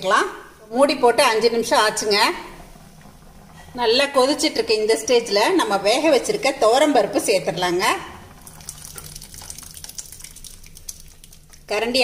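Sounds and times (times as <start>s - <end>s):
thick liquid plopping into a pan: 8.4s - 11.7s
small pops and ticks: 8.6s - 11.7s.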